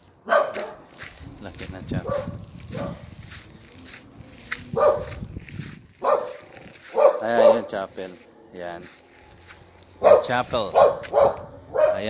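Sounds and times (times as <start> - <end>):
dog barking: 0.2 - 0.9, 2.0 - 3.1, 4.7 - 5.3, 6.0 - 7.8, 10.0 - 12.0.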